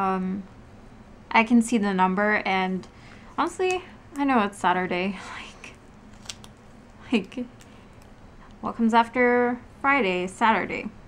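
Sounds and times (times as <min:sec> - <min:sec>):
paper sticker clicks and rustles: 0:06.1 - 0:06.6.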